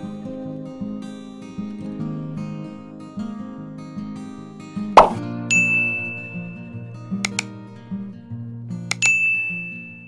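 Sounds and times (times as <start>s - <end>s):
acoustic guitar music: 0.0s - 10.0s
sharp pop: 5.0s - 5.3s
high bell ding: 5.5s - 6.9s, 8.9s - 10.0s.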